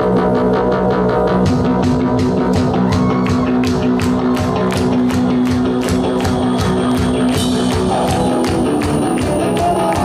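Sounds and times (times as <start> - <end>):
rock band playing: 0.0 - 10.0
drum kit steady beat: 1.3 - 10.0.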